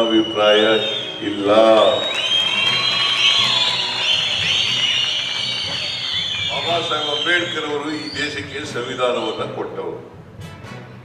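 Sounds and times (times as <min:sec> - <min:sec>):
crowd cheering: 0:00.0 - 0:09.4
whistling: 0:00.0 - 0:09.7.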